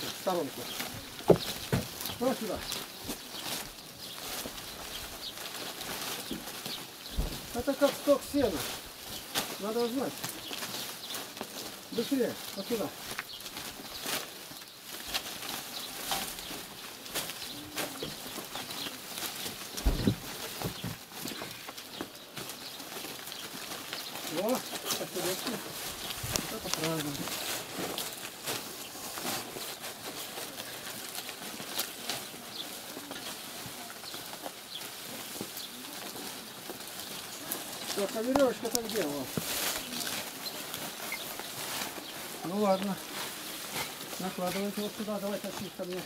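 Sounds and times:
bark strips rustling and crackling: 0:00.0 - 0:46.0
faint voices: 0:15.6 - 0:46.0
heavy thump: 0:19.8 - 0:20.9.

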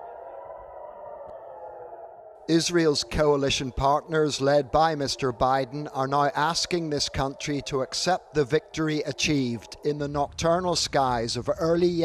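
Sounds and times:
air-raid siren: 0:00.0 - 0:10.6.

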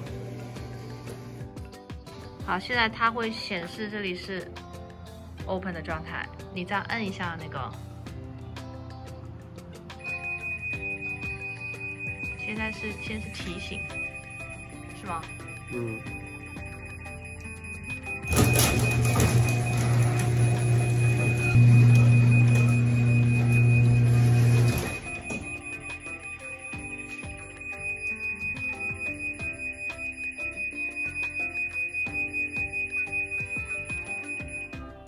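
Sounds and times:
high electronic tone: 0:10.0 - 0:34.7
garage door motor and rumble: 0:18.2 - 0:25.2.

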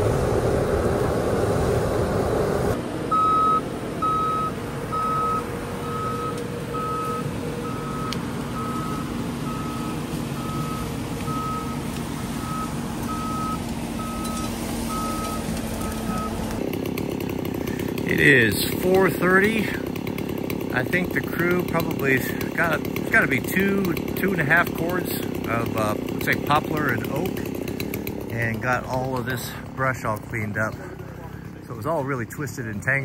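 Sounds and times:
loader engine running: 0:00.0 - 0:33.0
backup alarm beeping: 0:03.1 - 0:11.8, 0:12.4 - 0:16.4.

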